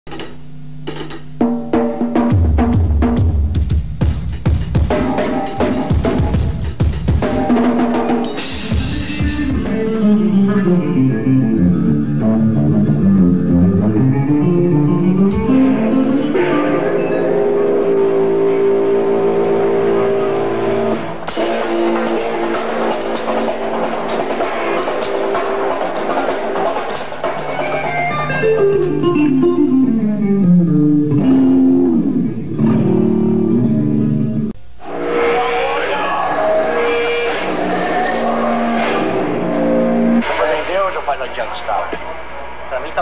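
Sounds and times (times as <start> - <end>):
drum hits: 0.1 - 9.8, 20.8 - 28.0
drum kit strokes: 0.1 - 40.8
steady low amplified tone: 2.2 - 26.6, 27.9 - 43.0
short guitar notes: 8.6 - 23.5, 27.8 - 40.4
ringing electric guitar chord: 8.6 - 23.9, 27.7 - 40.2.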